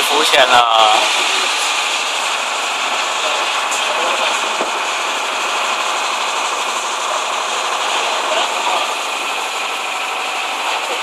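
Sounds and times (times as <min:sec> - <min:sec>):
motorboat rushing noise: 0:00.0 - 0:11.0.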